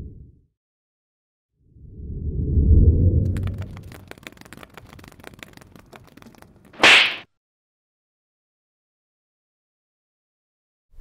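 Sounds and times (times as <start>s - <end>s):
short bright swish: 6.8s - 7.2s.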